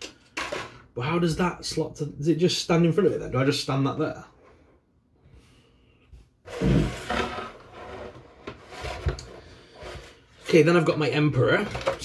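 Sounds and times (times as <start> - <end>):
scraping rustle: 6.5 - 10.7.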